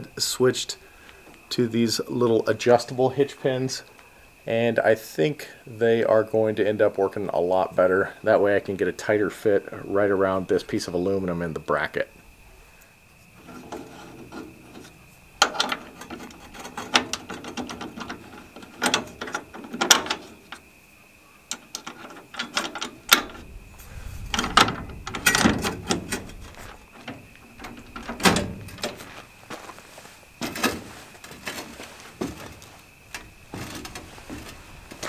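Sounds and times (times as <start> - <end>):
metal parts clicking and rattling: 13.4 - 20.6, 21.5 - 23.5, 24.2 - 29.2.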